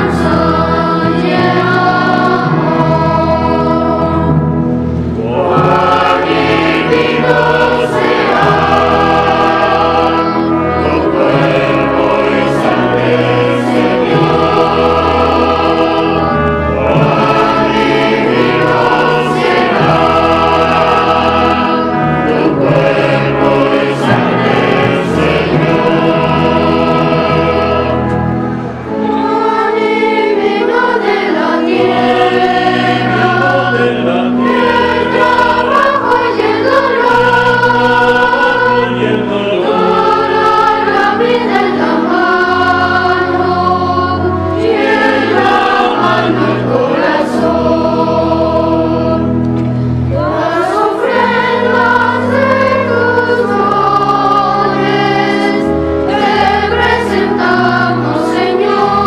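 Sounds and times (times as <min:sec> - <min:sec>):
choir singing a hymn: 0:00.0 - 0:59.0.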